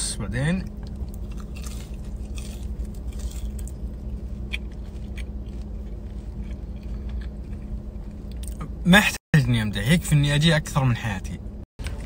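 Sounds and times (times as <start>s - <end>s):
steady low hum: 0.0s - 12.0s
person chewing french fries: 0.7s - 8.6s.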